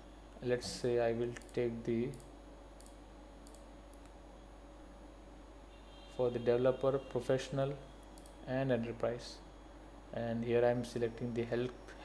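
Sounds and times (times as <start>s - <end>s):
computer mouse clicks: 1.3s - 4.2s, 8.1s - 8.4s.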